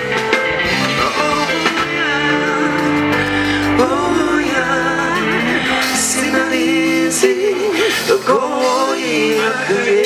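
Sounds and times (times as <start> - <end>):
live band playing: 0.0 - 10.0
man singing with vibrato: 0.8 - 10.0.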